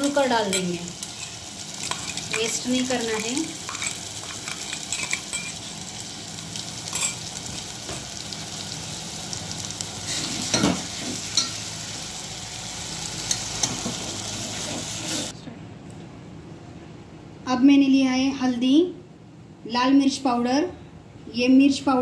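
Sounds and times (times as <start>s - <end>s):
paste sizzling in hot oil: 0.0s - 15.3s.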